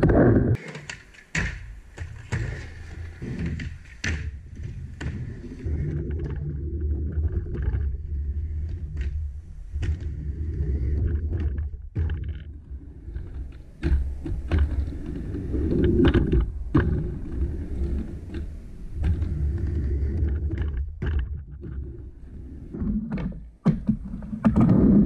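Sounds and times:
skateboard wheels rolling on ramp: 0.0 - 25.0
skateboard clacking on ramp: 0.5 - 6.4.

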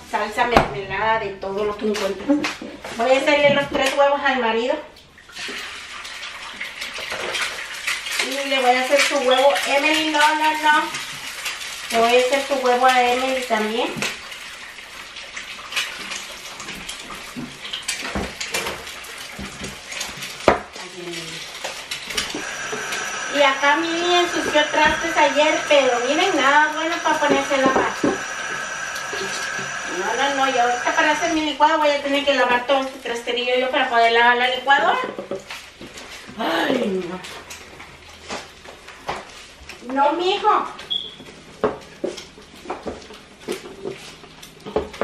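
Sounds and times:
low steady hum: 22.2 - 31.7.

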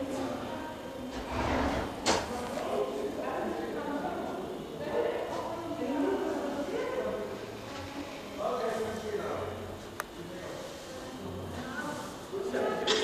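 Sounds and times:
indistinct talking: 0.0 - 13.0.

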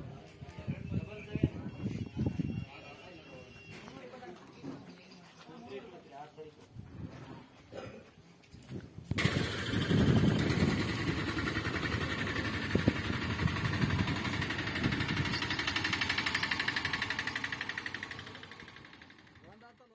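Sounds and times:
tractor diesel engine running: 9.2 - 19.8.

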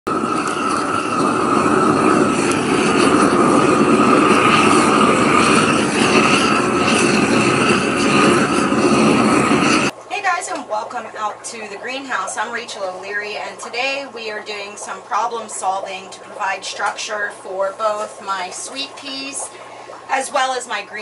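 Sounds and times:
torch flame rushing: 0.1 - 10.0.

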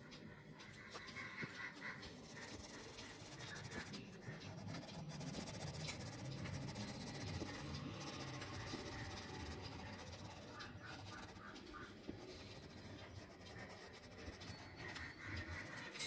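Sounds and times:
crayon rubbing on paper: 1.8 - 15.8.

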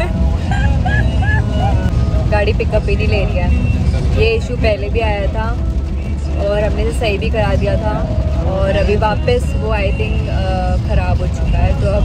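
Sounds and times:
woman laughing: 0.3 - 1.9.

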